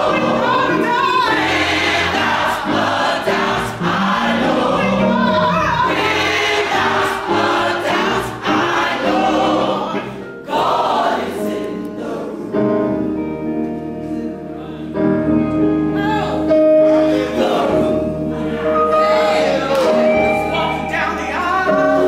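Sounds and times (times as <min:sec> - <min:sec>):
gospel choir singing: 0:00.0 - 0:13.4, 0:14.0 - 0:22.0.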